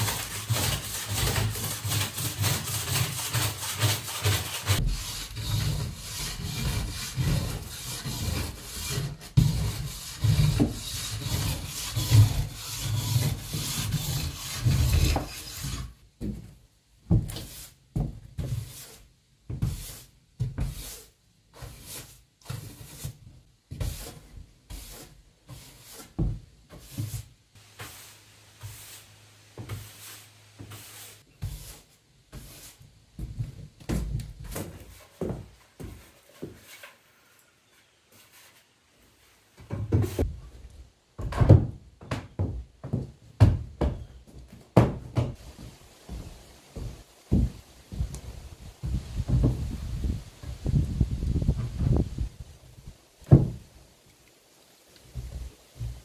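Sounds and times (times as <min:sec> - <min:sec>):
broom sweeping wooden floor: 0:00.0 - 0:40.4, 0:45.2 - 0:52.5, 0:54.6 - 0:56.0
boot footsteps on wood: 0:16.2 - 0:18.3, 0:41.2 - 0:49.8, 0:55.1 - 0:56.0.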